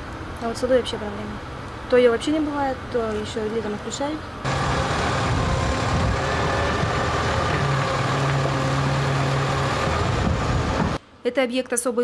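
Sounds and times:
excavator diesel engine running: 0:04.4 - 0:11.0.

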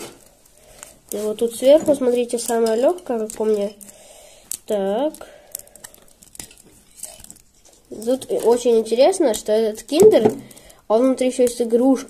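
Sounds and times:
foil wrapper crinkling: 0:00.2 - 0:10.8
sharp foil ticks: 0:02.3 - 0:08.6.

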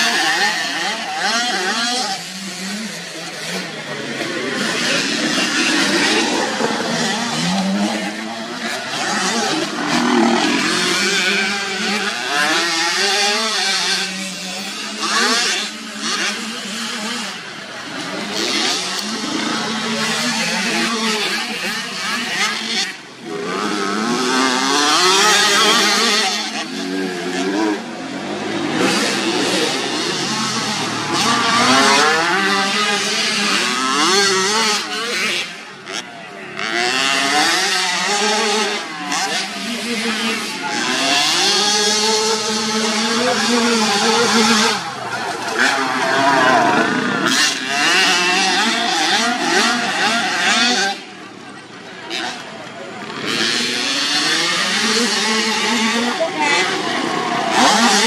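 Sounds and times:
motocross bike engines revving: 0:00.0 - 0:58.0.

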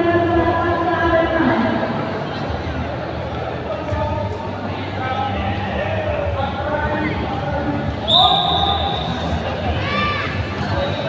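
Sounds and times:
crowd chatter: 0:00.0 - 0:11.0
whistle blown: 0:08.1 - 0:09.2.

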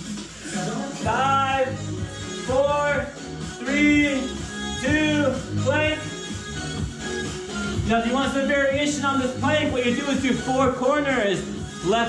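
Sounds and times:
melody over bass line: 0:01.0 - 0:12.0.

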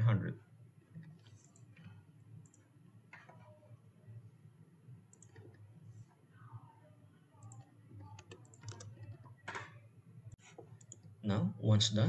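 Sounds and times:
computer keyboard and mouse clicks: 0:05.1 - 0:05.6, 0:07.4 - 0:09.8, 0:10.5 - 0:11.1.

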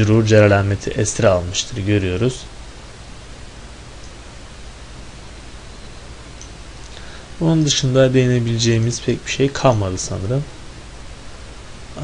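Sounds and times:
background hiss: 0:00.0 - 0:12.0
faint low hum: 0:00.0 - 0:12.0.

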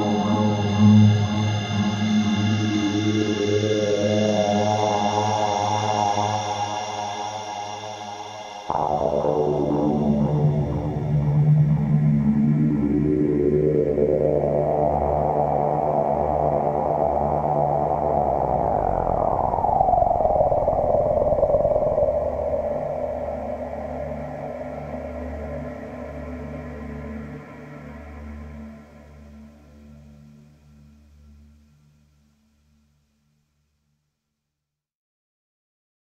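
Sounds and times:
gliding synth tone: 0:00.0 - 0:26.6
synthesizer pad sweeping upward: 0:00.0 - 0:29.4
steady low drone: 0:00.0 - 0:31.5.

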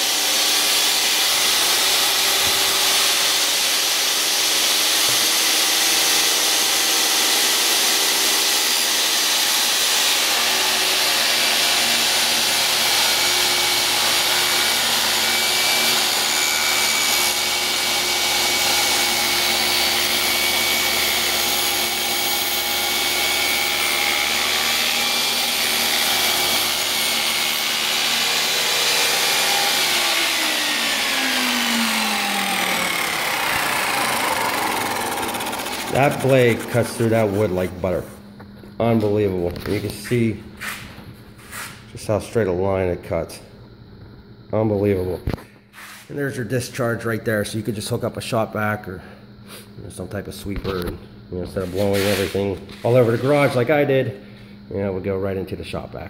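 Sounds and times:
table saw ripping wood: 0:00.0 - 0:38.0, 0:51.6 - 0:53.7.

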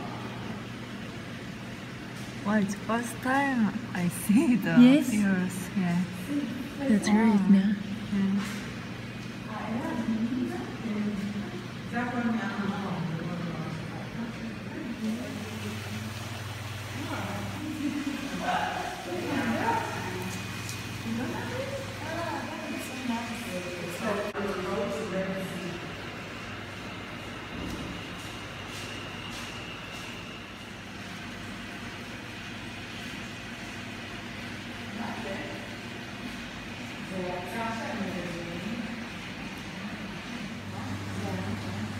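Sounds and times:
aquarium pumps humming: 0:00.0 - 0:41.9.

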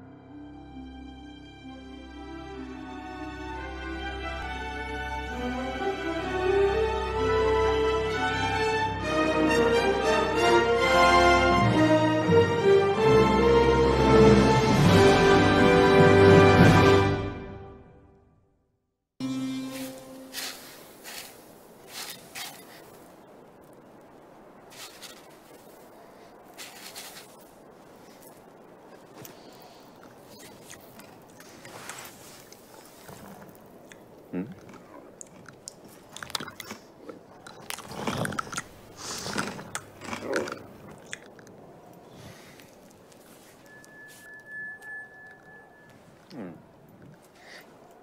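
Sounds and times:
soft steady hiss: 0:19.2 - 0:48.0
paintbrush sweeping sand: 0:19.5 - 0:23.1, 0:24.7 - 0:28.3.

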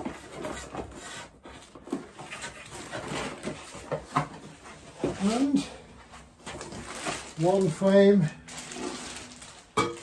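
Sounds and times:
packaging rustling and scraping: 0:00.0 - 0:10.0.

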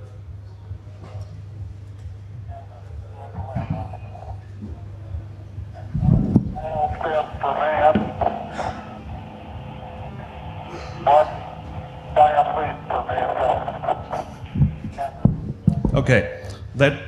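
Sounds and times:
man speaking over telephone-band audio: 0:03.0 - 0:04.4, 0:06.0 - 0:17.0.

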